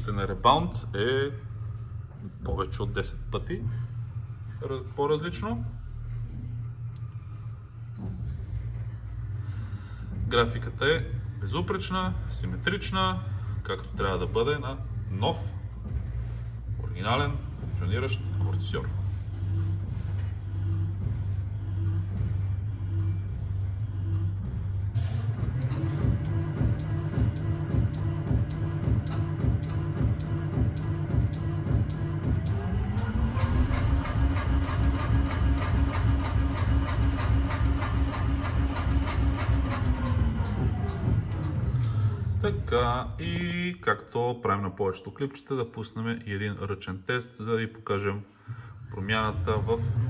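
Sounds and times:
dynamometer drive hum: 0.0 - 43.2, 49.0 - 50.0.

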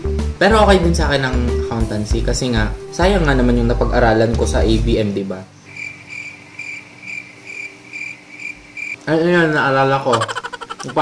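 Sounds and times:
cricket chirping: 5.6 - 9.0.

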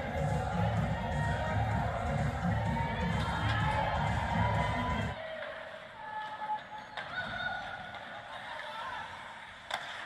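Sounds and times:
arena music with pulsing beat: 0.0 - 5.2.

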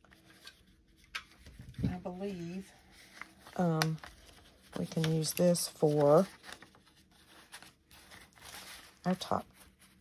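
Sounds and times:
paper envelope rustling: 0.0 - 10.0.

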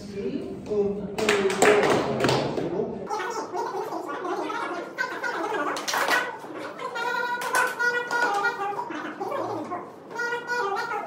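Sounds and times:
sped up garbled chatter: 3.0 - 11.0.

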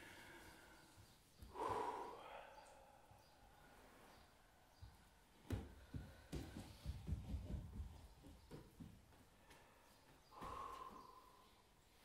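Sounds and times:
person breathing out hard: 0.0 - 3.9, 9.6 - 11.7.

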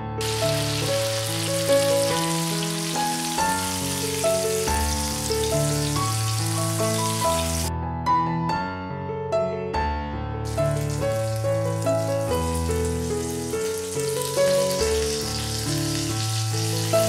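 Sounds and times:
soft piano music: 0.0 - 17.0
hot oil sizzling in frying pan: 0.2 - 7.7, 10.5 - 17.0.

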